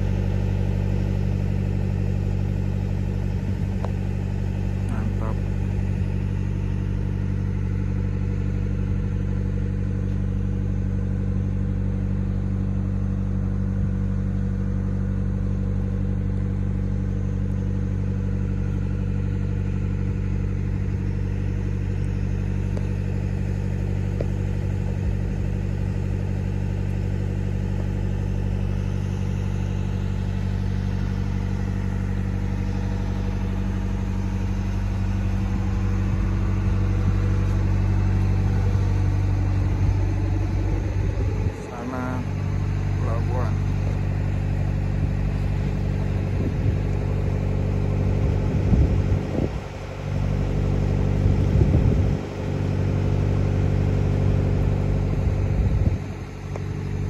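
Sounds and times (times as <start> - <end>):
boat diesel engine drone: 0.0 - 57.0.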